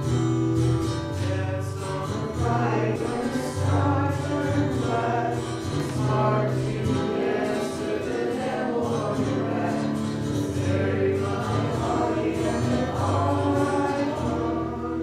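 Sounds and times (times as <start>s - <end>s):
choir singing a hymn: 1.2s - 15.0s.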